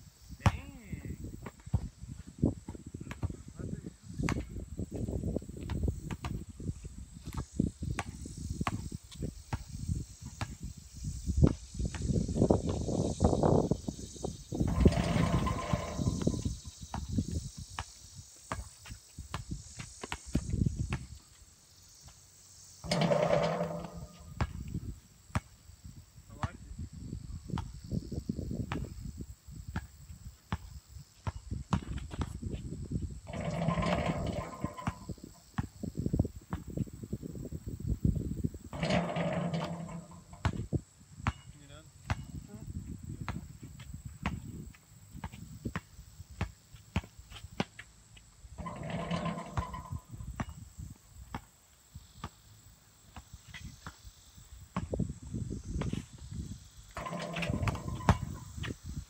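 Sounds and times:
basketball thumps: 0.4s - 0.8s, 2.7s - 3.4s, 14.6s - 17.9s, 22.9s - 24.7s, 30.5s - 32.4s, 33.3s - 35.8s, 38.7s - 42.4s, 43.2s - 44.6s, 45.2s - 47.8s, 48.6s - 50.6s, 57.0s - 58.8s.

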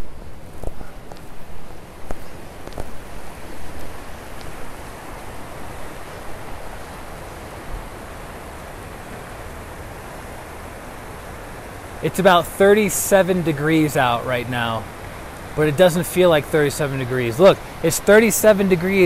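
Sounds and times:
creek rushing over rocks: 0.0s - 19.0s.

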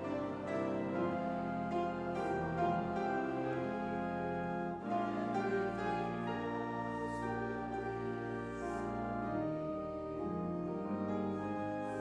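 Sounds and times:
pipe organ chords: 0.0s - 12.0s.

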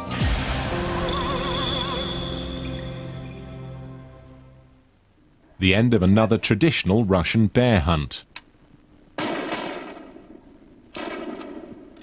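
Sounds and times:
gunshots: 9.2s - 12.0s.

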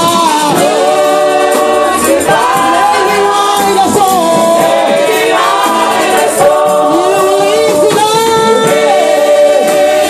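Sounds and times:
gospel choir singing in harmony: 0.0s - 10.0s
woman leading singing: 0.2s - 10.0s.

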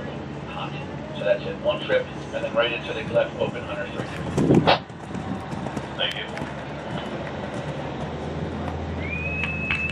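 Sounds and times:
horse hoofbeats on sand: 3.4s - 8.8s.

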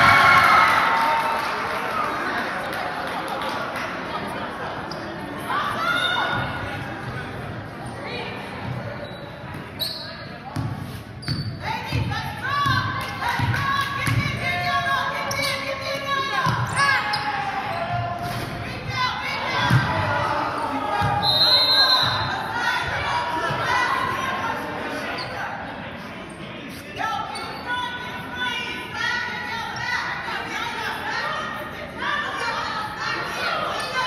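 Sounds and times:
voices in a hall: 0.0s - 34.0s.

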